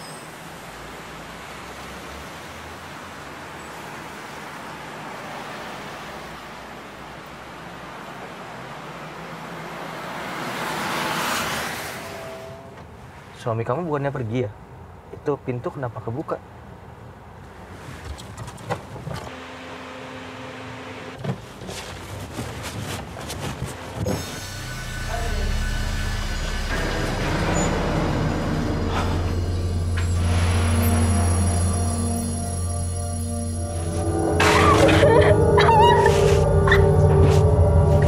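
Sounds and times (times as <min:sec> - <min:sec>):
suspenseful film score drone: 0:24.0 - 0:38.0
steady low hum: 0:24.4 - 0:35.5
woman whimpering cries: 0:34.6 - 0:36.5.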